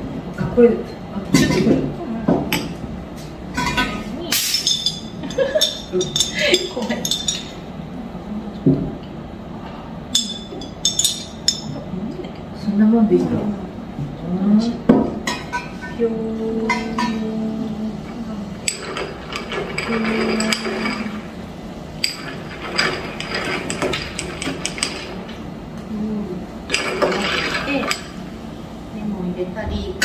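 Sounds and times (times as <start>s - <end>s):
low steady hum: 0.0s - 30.0s
glassware clinking: 3.6s - 7.6s, 10.1s - 11.8s, 18.6s - 21.3s, 22.0s - 25.4s.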